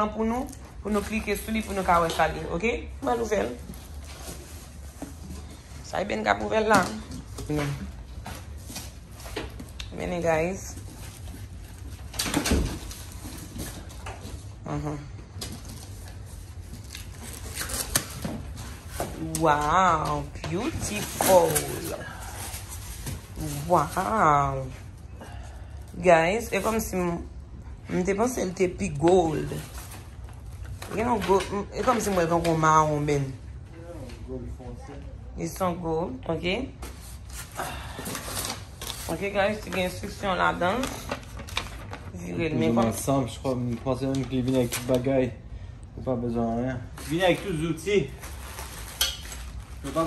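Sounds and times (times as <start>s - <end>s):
paper rustling and crinkling: 15.4s - 24.2s, 36.9s - 45.2s, 46.9s - 50.0s.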